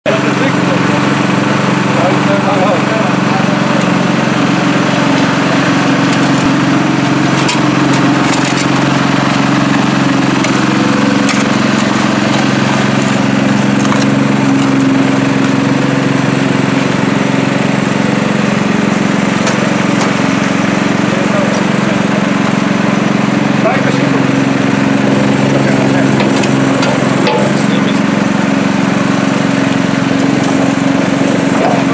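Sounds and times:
water pump engine running: 0.0s - 31.9s.

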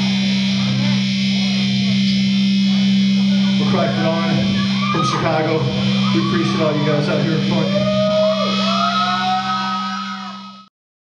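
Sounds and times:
rock band music: 0.0s - 10.7s.

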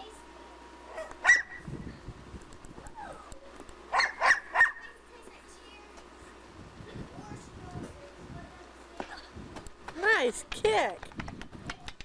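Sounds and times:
dog barking: 0.9s - 1.6s, 3.9s - 5.0s.

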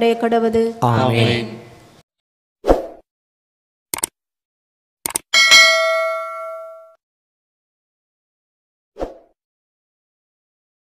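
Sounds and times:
bright bell ding: 5.4s - 7.0s.

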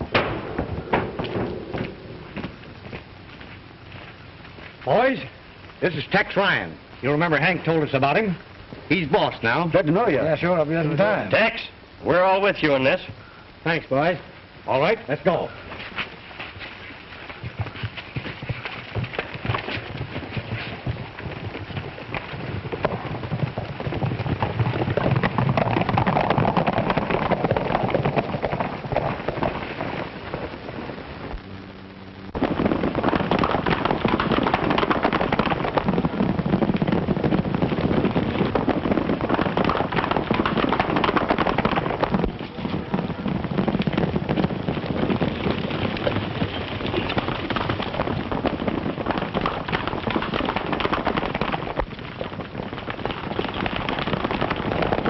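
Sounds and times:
horses galloping: 0.0s - 31.4s, 32.3s - 55.0s.

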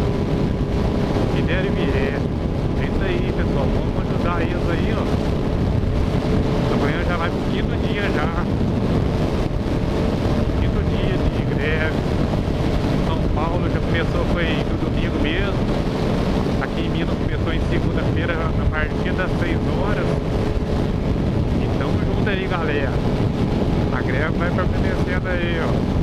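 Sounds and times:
motorcycle engine humming: 0.0s - 26.0s
wind rushing over microphone: 0.0s - 26.0s.

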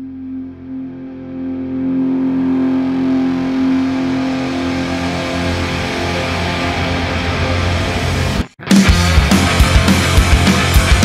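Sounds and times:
distorted droning guitar chord: 0.0s - 11.0s.

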